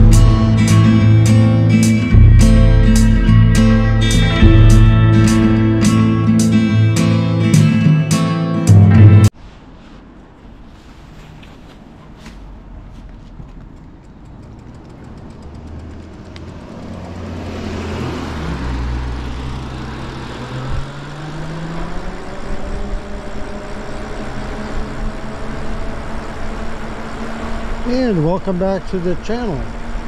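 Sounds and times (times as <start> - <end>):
electric bike motor whine: 20.6 - 27.9.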